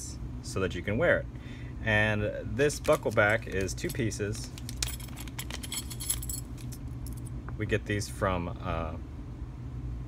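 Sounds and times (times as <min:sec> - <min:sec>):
low steady hum: 0:00.0 - 0:10.0
metal buckle parts clinking: 0:02.8 - 0:07.3.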